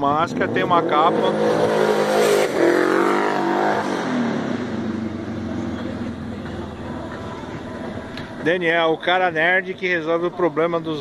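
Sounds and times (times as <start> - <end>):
vehicle engine passing: 0.4 - 8.9.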